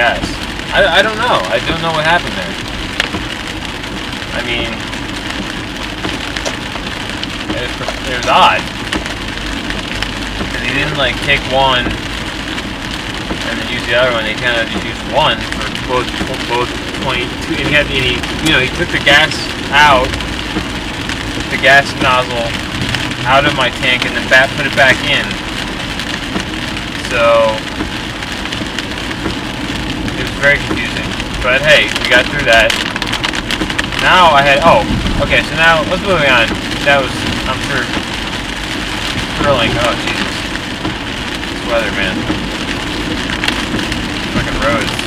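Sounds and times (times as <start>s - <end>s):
low road rumble: 0.0s - 45.0s
rain on a car: 0.0s - 45.0s
tyres hissing on wet road: 0.0s - 45.0s.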